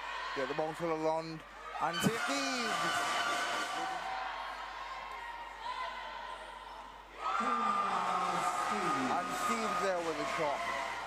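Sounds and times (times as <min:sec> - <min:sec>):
crowd noise in sports hall: 0:00.0 - 0:11.0.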